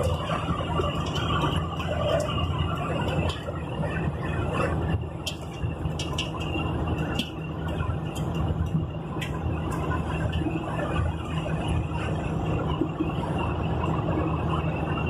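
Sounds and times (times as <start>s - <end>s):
faint high whine: 0.0s - 15.0s
vehicle engine and road noise: 0.0s - 15.0s.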